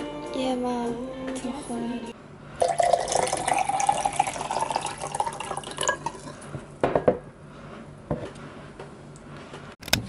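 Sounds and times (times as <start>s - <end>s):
liquid pouring into a glass: 2.6s - 6.4s.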